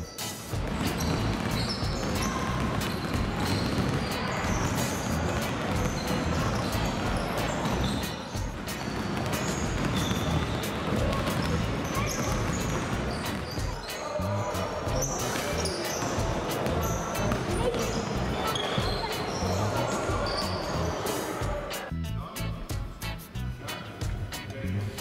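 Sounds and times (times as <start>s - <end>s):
background music: 0.0s - 25.0s
voices in a hall: 0.0s - 25.0s
basketballs bouncing on floor: 0.5s - 13.9s, 14.8s - 19.4s.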